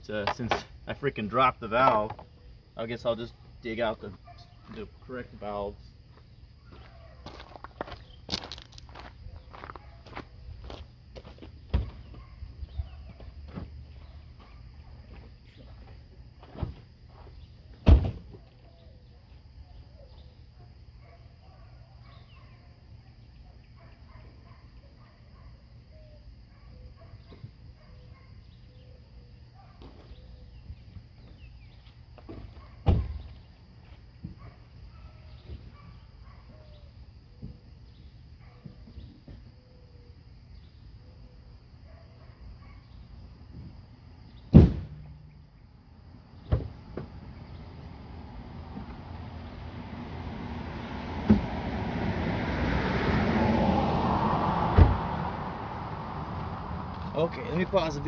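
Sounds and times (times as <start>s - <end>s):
loud thumps: 44.5s - 45.3s.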